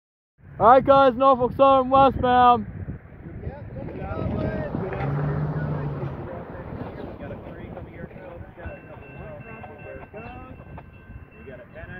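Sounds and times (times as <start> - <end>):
wind buffeting microphone: 0.4 - 11.9
car driving past: 3.7 - 9.2.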